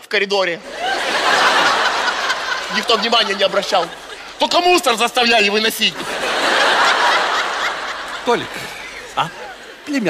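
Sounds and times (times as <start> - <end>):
large audience laughing: 0.6 - 10.0.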